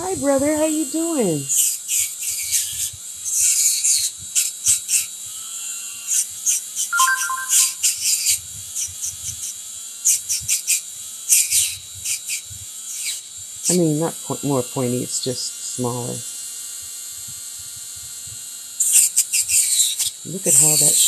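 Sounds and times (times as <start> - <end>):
rotary tool motor hum: 0.0 - 6.9, 8.1 - 13.7, 16.2 - 21.0
two-note electronic beep: 7.0 - 7.8.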